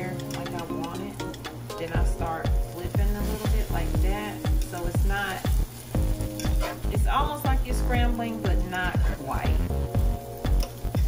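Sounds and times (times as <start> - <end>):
eggs sizzling in a frying pan: 0.0 - 11.0
background music with heavy beat: 5.5 - 7.9, 8.5 - 11.0.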